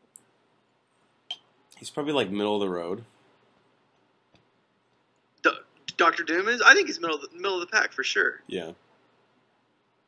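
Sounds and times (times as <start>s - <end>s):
speech: 1.8s - 3.1s, 5.5s - 8.8s.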